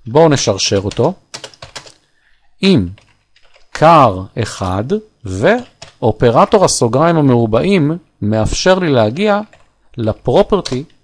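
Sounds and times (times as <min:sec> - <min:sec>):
computer keyboard typing: 0:00.6 - 0:02.0, 0:02.9 - 0:03.8, 0:05.5 - 0:06.0, 0:09.4 - 0:11.0.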